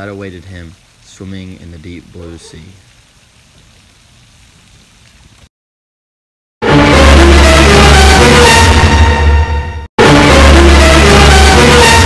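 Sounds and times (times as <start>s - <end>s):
rippling pond water: 0.0s - 5.5s.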